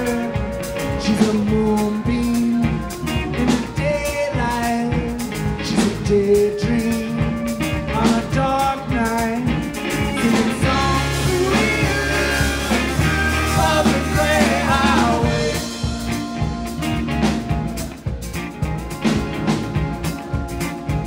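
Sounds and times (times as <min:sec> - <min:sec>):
person singing: 0:00.0 - 0:18.4
bass: 0:00.0 - 0:21.0
drums: 0:00.0 - 0:21.0.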